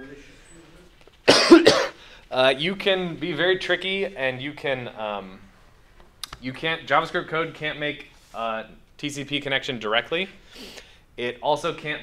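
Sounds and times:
person coughing: 1.3 - 2.0.

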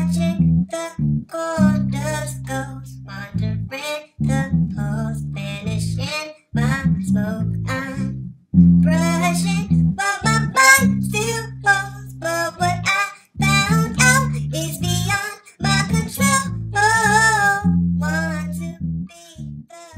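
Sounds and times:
person singing: 0.0 - 8.1, 8.8 - 19.9
electric bass guitar: 0.0 - 19.7.

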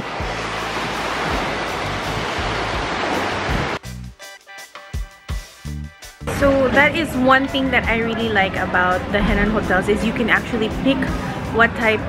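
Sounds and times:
waves washing onto beach: 0.0 - 3.8, 7.4 - 12.0
background music: 0.0 - 12.0.

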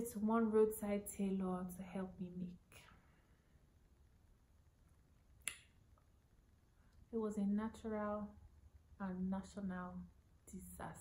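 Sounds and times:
mouth click: 5.4 - 5.7.

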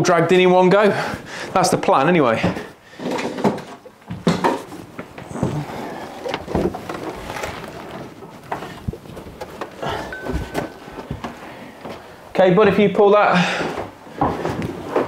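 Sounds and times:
footsteps on wooden floorboards: 4.0 - 12.8, 13.5 - 15.0
faint high tone: 10.1 - 11.0.

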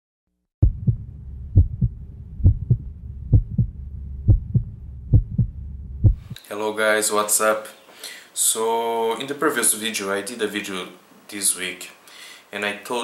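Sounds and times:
heartbeat double thumps: 0.6 - 6.4
steady low drone: 0.6 - 6.4.

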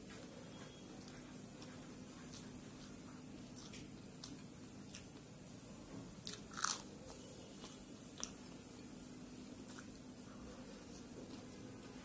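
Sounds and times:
crunching bites into chilli: 6.2 - 6.9.

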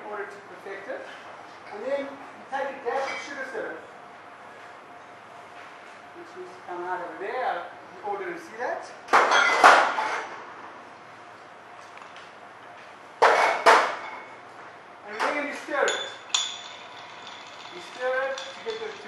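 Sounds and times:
bar tools rattling: 15.2 - 19.0
glass clink: 15.8 - 19.0.

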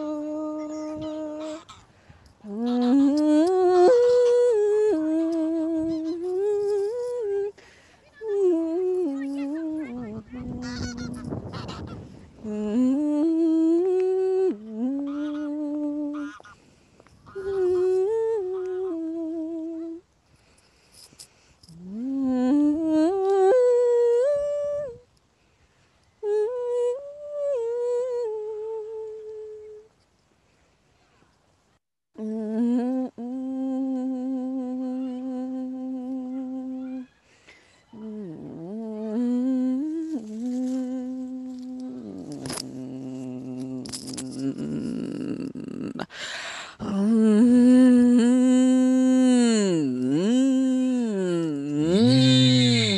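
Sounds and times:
woman singing wordless phrases: 0.0 - 11.4, 12.3 - 16.5, 17.2 - 20.1, 21.7 - 25.1, 26.2 - 30.0, 32.2 - 37.2, 37.9 - 52.9.

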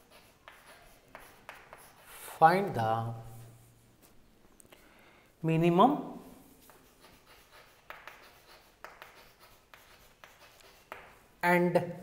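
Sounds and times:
chalk scratching on blackboard: 0.0 - 3.8, 6.4 - 11.4.

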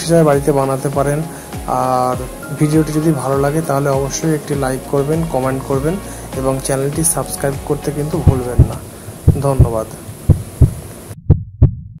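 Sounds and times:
faint background hiss: 0.0 - 11.2
heartbeat thumps: 8.2 - 12.0.

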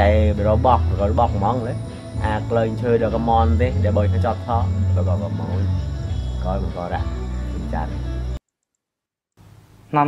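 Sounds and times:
man speaking: 0.0 - 5.7, 6.4 - 8.0
steady background tone: 0.0 - 8.8.

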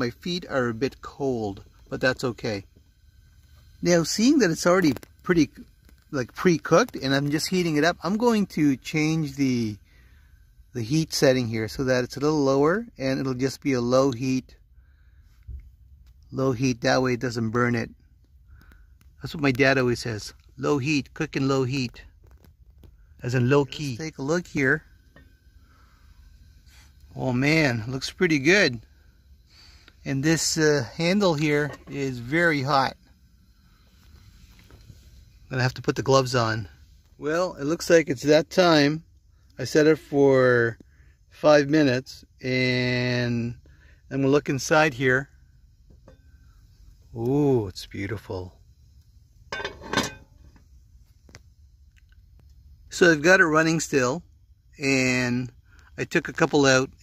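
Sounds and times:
faint hiss of camp stove: 0.0 - 57.0.

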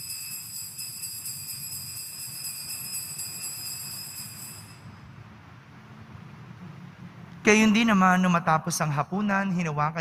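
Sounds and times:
altar bells jingling: 0.0 - 5.0.

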